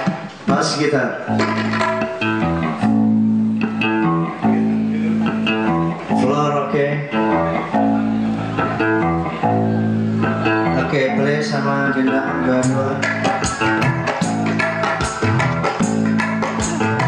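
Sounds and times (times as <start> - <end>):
electric guitar melodic notes: 1.2 - 17.0
long held bass notes: 1.3 - 17.0.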